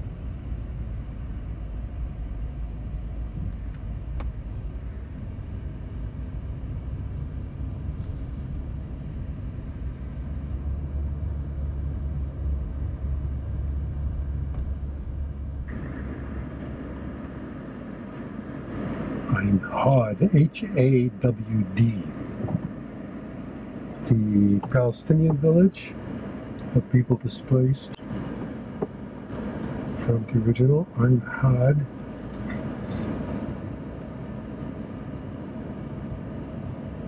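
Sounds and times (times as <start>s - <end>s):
low outdoor rumble: 0.0s - 37.0s.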